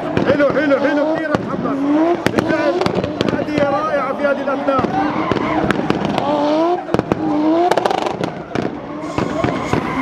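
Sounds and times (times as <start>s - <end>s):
car engine revving hard: 0.0s - 10.0s
exhaust pops and cracks: 4.8s - 10.0s.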